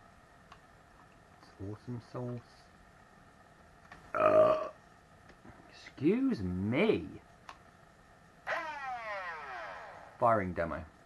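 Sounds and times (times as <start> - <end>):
electric motors revving and whining: 8.5 - 10.2.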